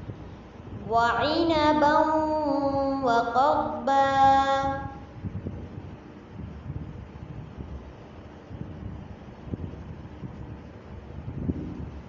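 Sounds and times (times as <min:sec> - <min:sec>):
low uneven rumbling: 0:00.0 - 0:12.0.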